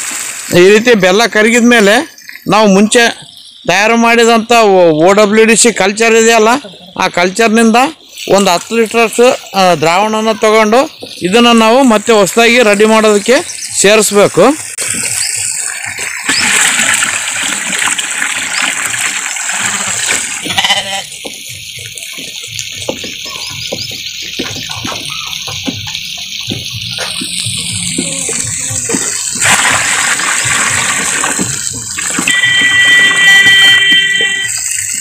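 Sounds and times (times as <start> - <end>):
water splashing into drum: 0.0 - 1.4, 14.6 - 35.0
brief high-pitched call: 32.3 - 34.8.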